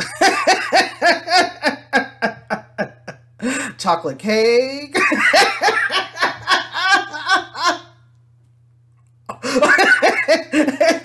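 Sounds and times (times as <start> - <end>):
man laughing: 0.0 - 3.7, 4.9 - 8.0, 9.3 - 11.0.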